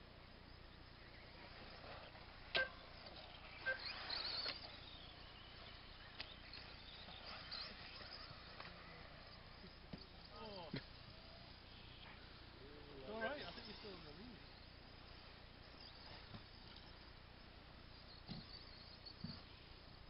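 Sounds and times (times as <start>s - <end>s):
softer clicks: 6.1s - 6.7s.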